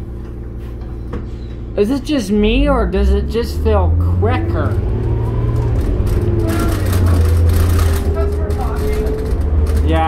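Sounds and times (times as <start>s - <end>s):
bus engine drone: 0.0s - 10.0s
thin rising whine: 2.6s - 9.8s.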